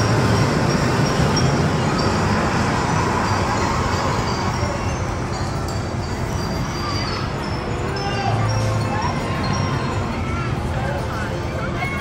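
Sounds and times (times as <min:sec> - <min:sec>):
amusement park noise: 0:00.0 - 0:12.0
spinning ride rumbling: 0:00.0 - 0:12.0.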